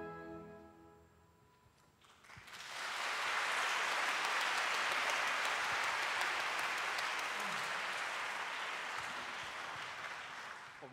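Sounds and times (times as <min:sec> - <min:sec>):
audience applauding: 0:02.0 - 0:10.9.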